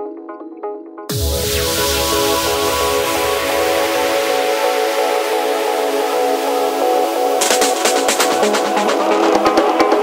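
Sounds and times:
sustained synth chord: 0:01.1 - 0:07.4.

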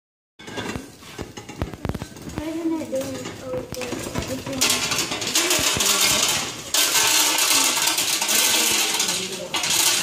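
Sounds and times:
wooden corn sheller clicking: 0:00.7 - 0:10.0.

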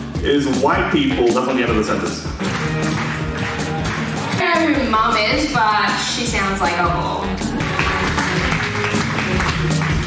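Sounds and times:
music with steady bass line: 0:00.0 - 0:10.0
audience applauding: 0:02.3 - 0:05.0, 0:07.3 - 0:10.0.

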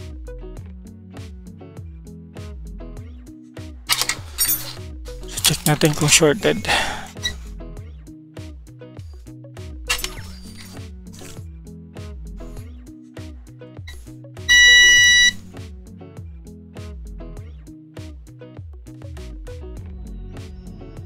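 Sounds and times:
background music with steady beat: 0:00.0 - 0:21.0
multimeter continuity beep: 0:14.5 - 0:15.4.

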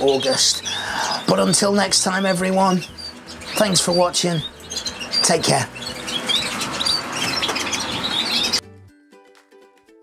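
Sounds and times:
canaries chirping and singing: 0:00.0 - 0:08.7.

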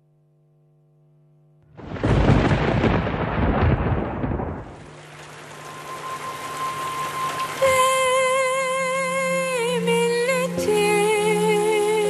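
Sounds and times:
thunder-like rumble over speakers: 0:01.8 - 0:04.8
rising hiss with high tone: 0:04.9 - 0:12.0.

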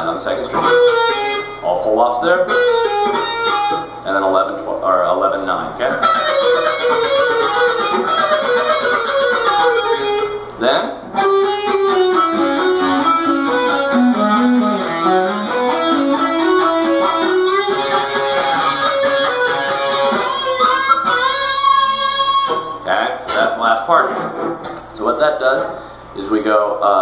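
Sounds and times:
electric guitar solo: 0:00.5 - 0:01.6, 0:02.4 - 0:04.1, 0:05.9 - 0:22.9.

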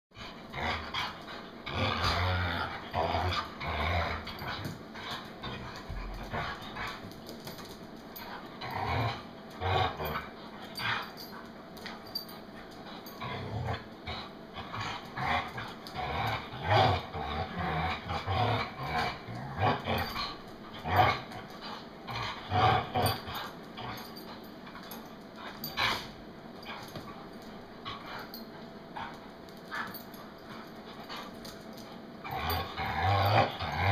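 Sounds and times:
dogs growling and snarling: 0:00.2 - 0:33.9.

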